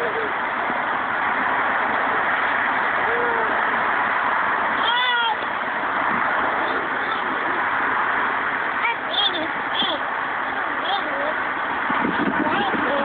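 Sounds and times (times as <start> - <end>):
steady loud hiss: 0.0 - 13.0.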